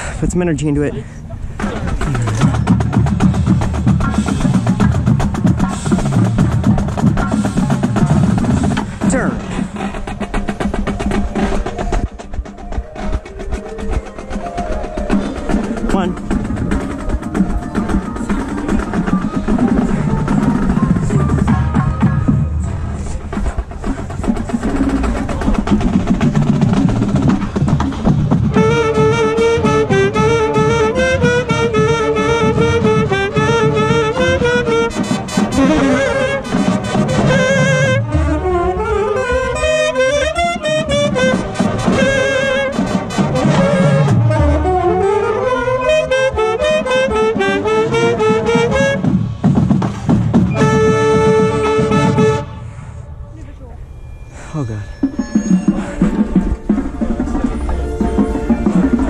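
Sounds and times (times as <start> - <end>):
marching band drums and percussion: 1.6 - 52.6, 54.5 - 59.0
saxophone solo: 28.5 - 49.2, 50.5 - 53.0.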